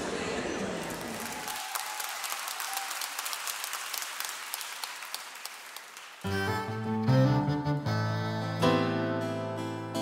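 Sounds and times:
audience applauding: 0.7s - 6.8s.

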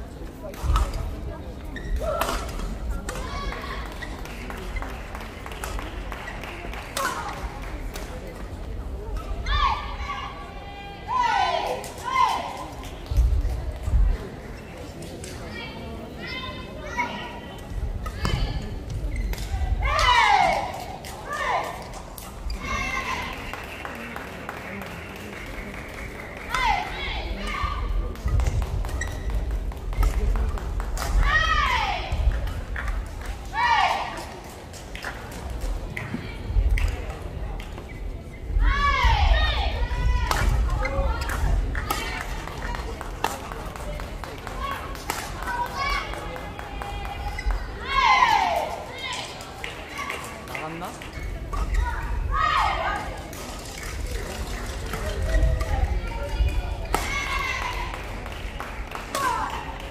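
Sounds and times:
rackets hitting shuttlecock: 40.2s - 47.6s, 56.8s - 58.0s.

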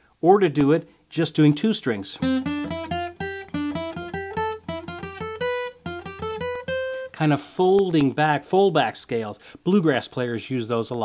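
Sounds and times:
acoustic guitar picking a scale: 2.2s - 7.4s.

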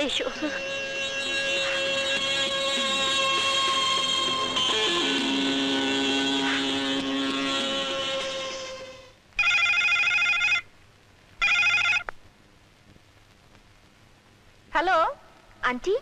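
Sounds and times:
telephone ringing: 9.4s - 10.6s, 11.4s - 12.0s.

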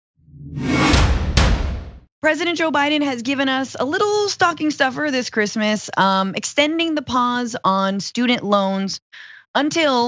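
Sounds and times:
sharp hits: 0.3s - 2.0s
whoosh sound effect: 0.3s - 2.0s.

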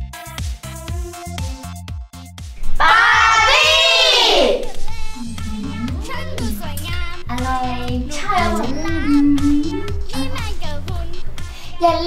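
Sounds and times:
upbeat music with steady beat: 0.0s - 12.0s
young voice singing: 3.2s - 12.0s.

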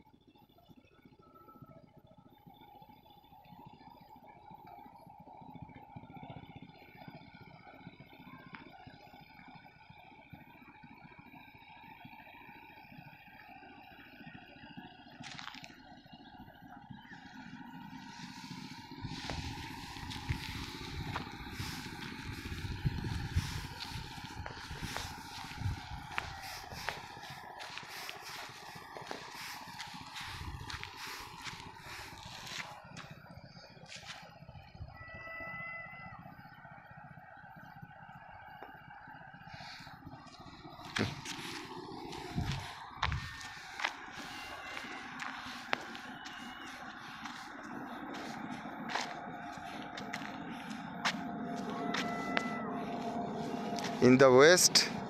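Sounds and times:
faint outdoor tones: 0.0s - 55.0s
low rumbles: 16.4s - 35.0s, 36.2s - 55.0s.

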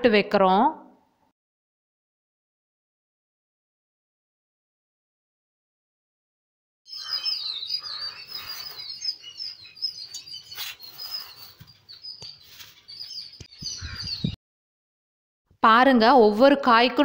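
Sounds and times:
small birds chirping: 6.9s - 14.4s.

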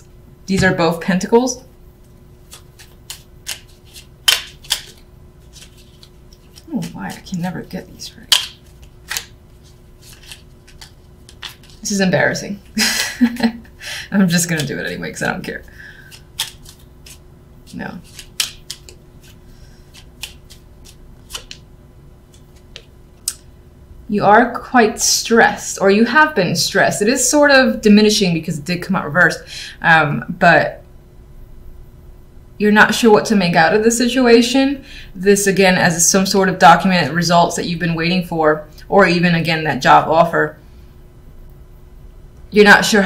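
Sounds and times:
cards snapping and tapping: 2.5s - 7.0s, 8.3s - 9.4s, 10.1s - 11.8s, 16.1s - 17.2s, 18.0s - 21.6s.

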